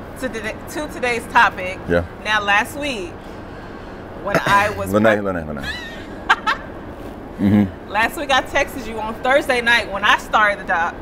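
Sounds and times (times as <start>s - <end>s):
woman talking: 0.2s - 3.2s, 4.2s - 5.2s, 7.9s - 11.0s.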